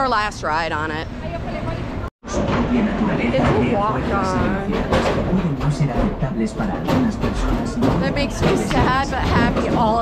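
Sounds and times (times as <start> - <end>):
person talking: 3.3 - 4.8.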